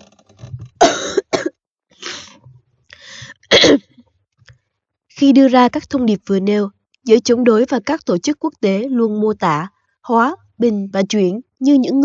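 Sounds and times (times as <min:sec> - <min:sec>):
person coughing: 0:00.8 - 0:01.6, 0:03.4 - 0:04.0.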